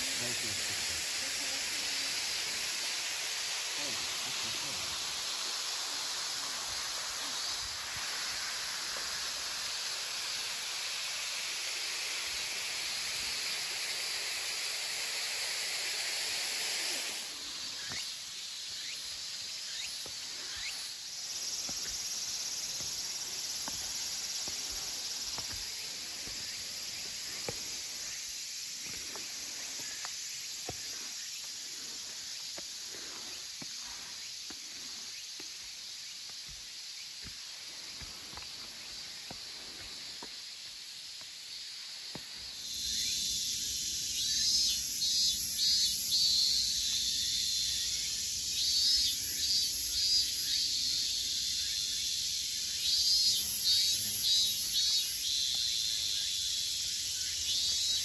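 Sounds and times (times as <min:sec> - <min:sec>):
cicadas pulsing calls: 0:00.0 - 0:58.0
cicadas singing: 0:00.0 - 0:58.0.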